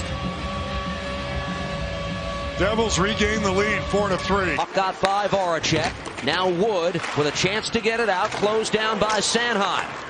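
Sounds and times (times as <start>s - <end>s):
faint held tone: 0.0s - 4.6s.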